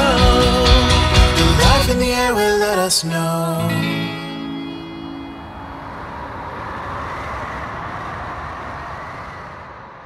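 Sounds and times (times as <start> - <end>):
ocean waves: 2.1 - 10.0.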